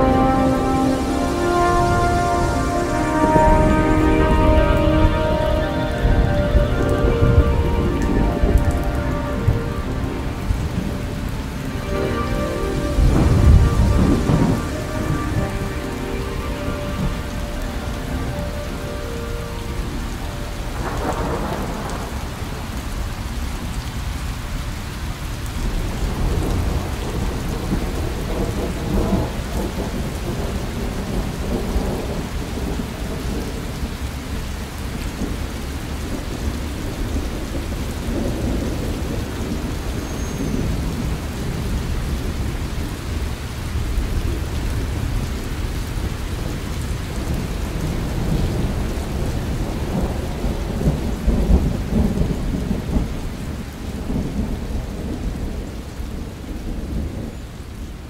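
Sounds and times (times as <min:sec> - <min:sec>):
rolling thunder: 0:00.0 - 0:18.8, 0:19.4 - 0:23.8, 0:25.6 - 0:57.8
ambient electronic music tones: 0:00.0 - 0:22.9
steady rain: 0:00.0 - 0:58.0.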